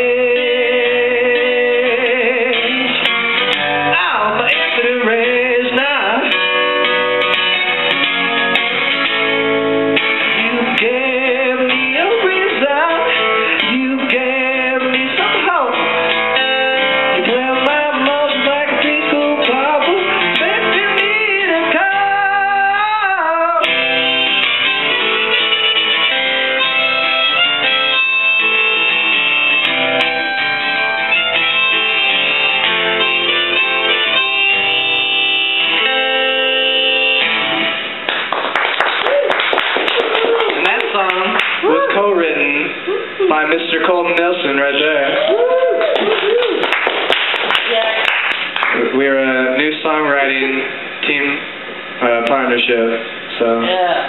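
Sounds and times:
man singing: 0:00.0 - 0:03.1, 0:03.8 - 0:06.4, 0:10.2 - 0:15.7, 0:17.1 - 0:23.8
acoustic guitar strumming: 0:00.0 - 0:45.2
harmonica playing: 0:06.1 - 0:11.0, 0:23.6 - 0:38.0.

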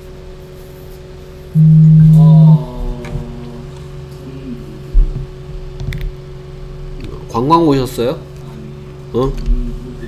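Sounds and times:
steady low hum: 0:01.1 - 0:10.0
loud low buzz: 0:01.5 - 0:04.1.

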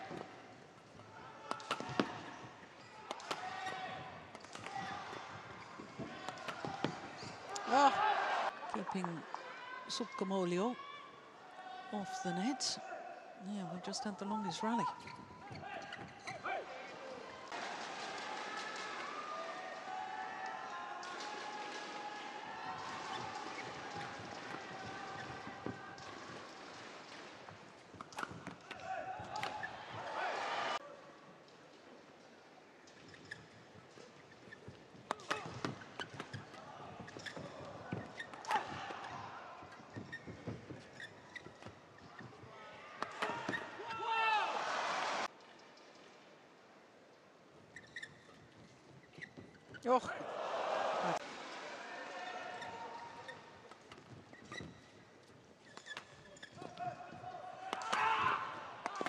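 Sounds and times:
crowd cheering and shouting: 0:28.8 - 0:30.8, 0:50.1 - 0:53.0.

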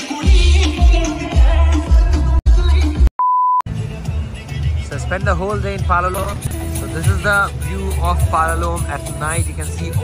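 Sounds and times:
dance music with heavy bass: 0:00.0 - 0:03.1
steady beep: 0:03.2 - 0:03.6.

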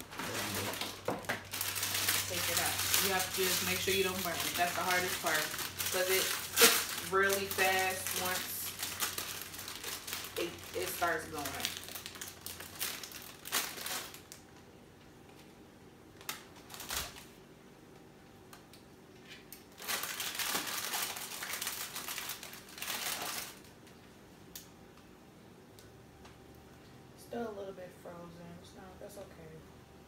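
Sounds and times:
plastic bag crinkling: 0:00.0 - 0:14.6, 0:16.2 - 0:17.4, 0:19.6 - 0:24.0.

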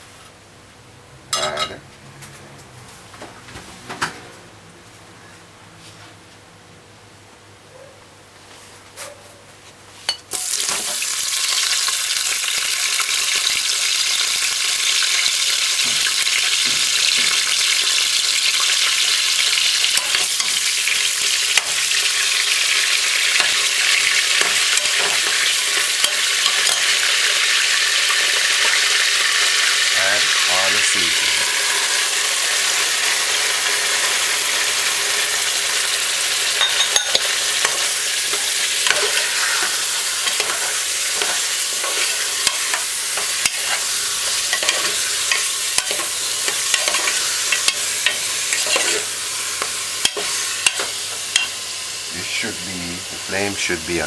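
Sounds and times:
meat sizzling in hot oil: 0:10.3 - 0:54.0.

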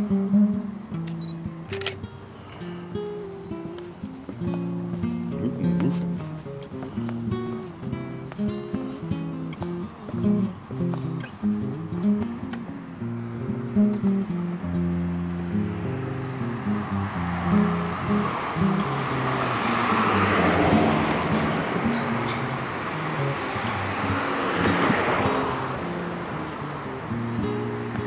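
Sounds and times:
acoustic guitar music: 0:00.0 - 0:28.0.

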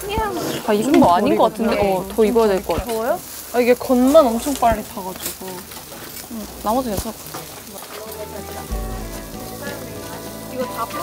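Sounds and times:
meat sizzling on a grill: 0:00.0 - 0:11.0
background music: 0:08.2 - 0:11.0.

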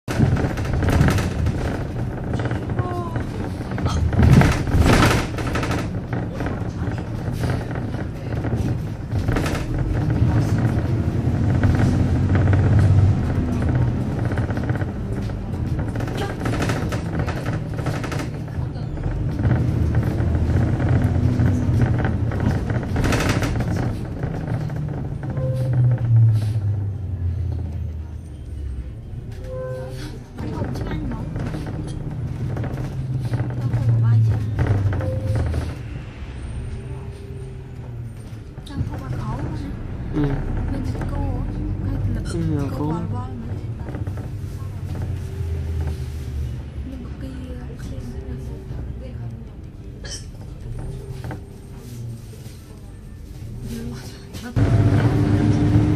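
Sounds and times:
bus engine and road rumble: 0:00.0 - 0:55.9
rattles or knocks: 0:00.1 - 0:26.8
people talking: 0:02.6 - 0:03.6, 0:30.4 - 0:31.8, 0:33.3 - 0:35.2, 0:38.6 - 0:45.6, 0:46.8 - 0:51.0.

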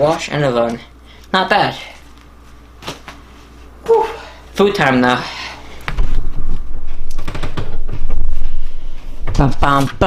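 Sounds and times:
microphone knocks and rustles: 0:05.9 - 0:09.6.

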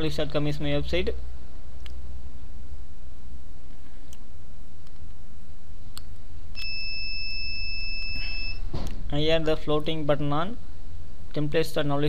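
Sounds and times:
low electrical hum: 0:00.0 - 0:12.0
click: 0:01.8 - 0:02.0, 0:04.8 - 0:05.2, 0:05.9 - 0:06.2
high electronic beep: 0:06.6 - 0:08.6.

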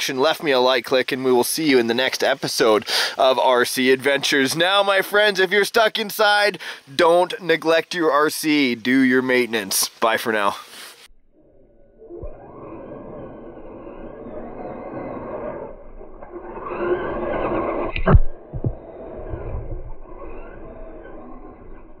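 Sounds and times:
slowed toy car motor: 0:12.2 - 0:21.6.

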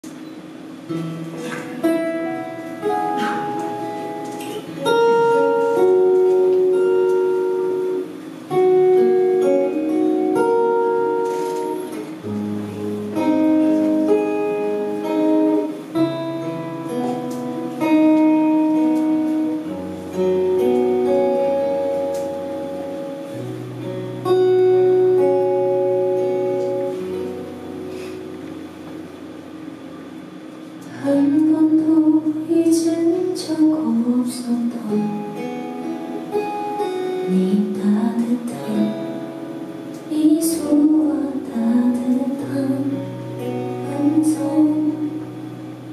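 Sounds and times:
picked guitar melody: 0:00.0 - 0:45.9
low held guitar bass notes: 0:00.9 - 0:33.6.

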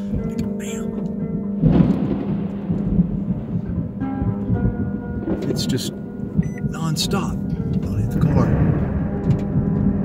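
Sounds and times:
background music: 0:00.0 - 0:10.0
thunder rumbling: 0:00.0 - 0:10.0.

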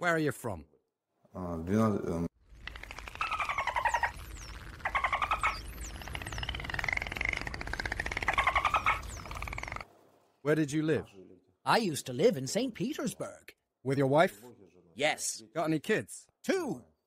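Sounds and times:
high falling chirps: 0:02.5 - 0:09.9.

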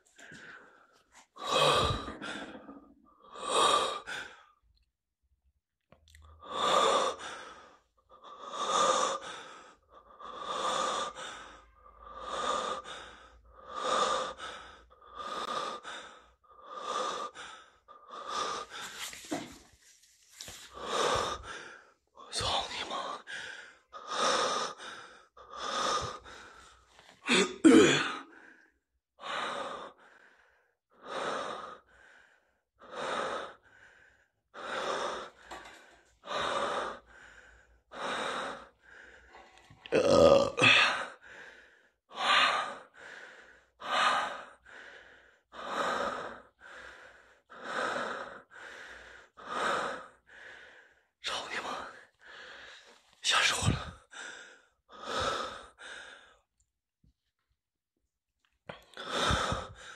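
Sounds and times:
man breathing heavily: 0:00.0 - 0:04.6, 0:06.4 - 0:56.6, 0:58.7 - 0:59.9.

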